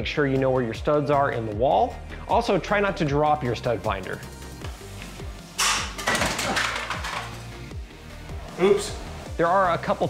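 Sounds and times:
background music with beat: 0.0s - 10.0s
device clattering on floor: 5.6s - 7.4s.

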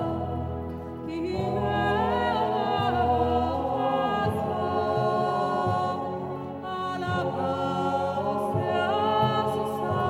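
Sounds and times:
male choir singing: 0.0s - 10.0s.

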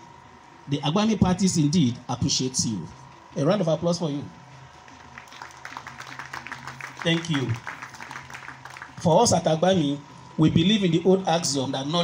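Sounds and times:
steady low hum: 0.0s - 12.0s
audience applauding: 4.9s - 9.0s.

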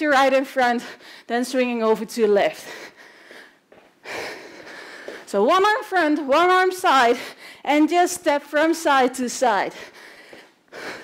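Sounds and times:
woman speaking: 0.0s - 2.7s, 5.3s - 9.9s
woman breathing hard: 0.8s - 1.3s, 2.6s - 5.3s, 7.1s - 7.7s, 9.7s - 11.0s.

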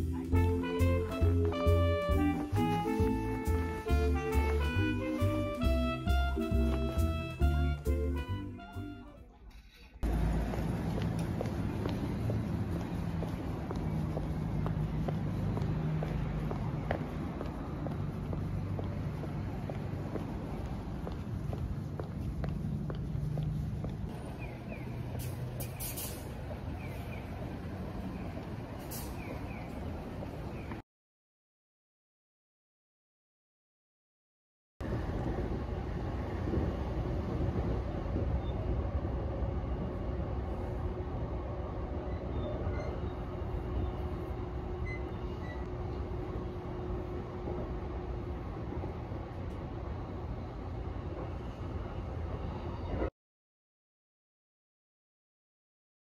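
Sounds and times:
street traffic rumble: 0.0s - 30.8s, 34.8s - 53.1s.

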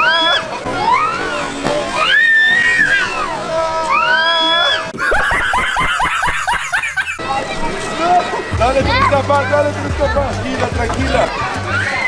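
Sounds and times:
man laughing hard: 4.9s - 7.2s.

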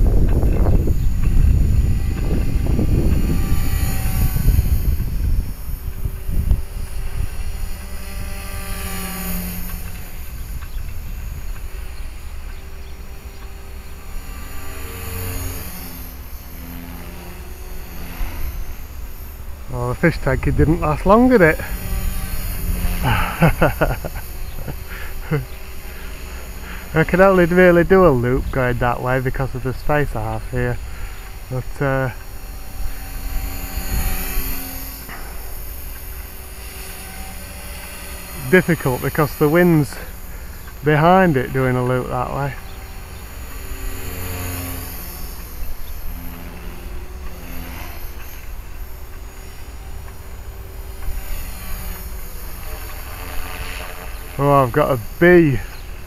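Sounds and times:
wind rumble on microphone: 0.0s - 14.9s, 19.6s - 25.6s
rc helicopter rotor hum: 0.0s - 56.0s
man chuckling: 23.0s - 25.6s.

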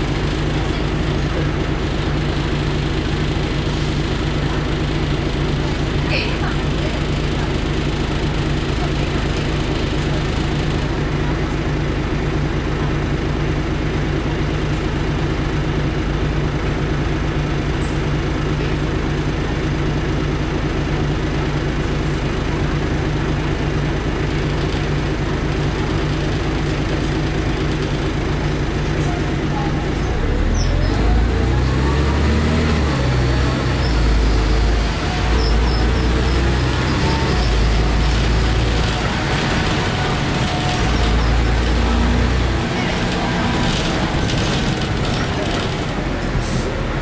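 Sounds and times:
diesel bus engine running steadily: 0.0s - 47.0s.

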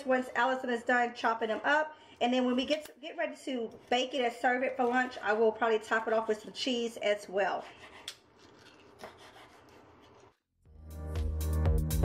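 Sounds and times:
background music: 10.7s - 12.0s.

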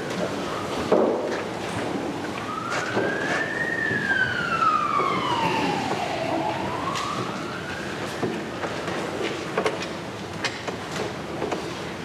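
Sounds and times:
emergency siren wailing: 0.0s - 0.9s, 1.7s - 9.3s.

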